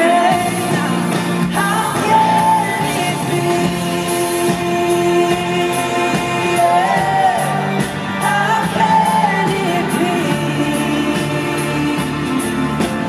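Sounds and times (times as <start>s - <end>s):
band accompaniment with percussion: 0.0s - 13.0s
woman singing: 0.0s - 13.0s.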